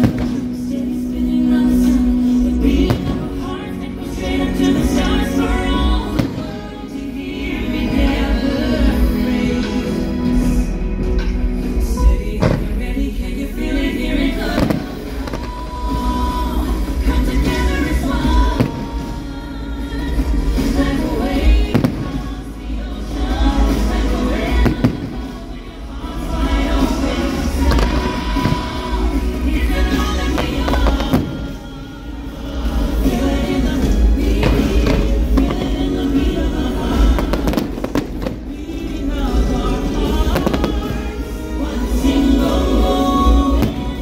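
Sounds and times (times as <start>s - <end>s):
fireworks bursting: 0.0s - 10.5s, 14.1s - 44.0s
music playing: 0.0s - 44.0s.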